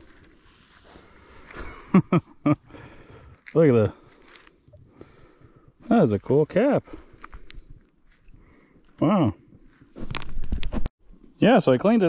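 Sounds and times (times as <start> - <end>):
man speaking: 3.6 - 4.0, 5.9 - 6.9, 9.0 - 9.4, 11.4 - 12.0.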